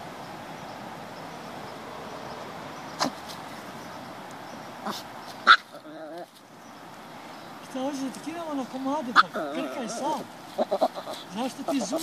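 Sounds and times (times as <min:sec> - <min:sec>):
steady background hiss: 0:00.0 - 0:12.0
small dog barking: 0:04.8 - 0:05.8.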